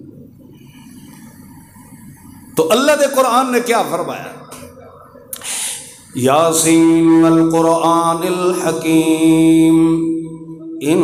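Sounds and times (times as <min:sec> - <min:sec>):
man chanting over microphone: 0:02.6 - 0:05.0, 0:06.0 - 0:11.0.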